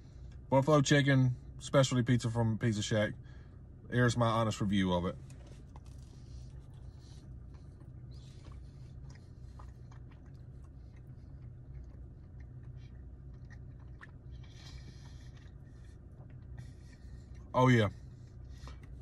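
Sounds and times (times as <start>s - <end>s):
steady low hum: 0.0s - 19.0s
man chewing with mouth clicks: 5.3s - 19.0s.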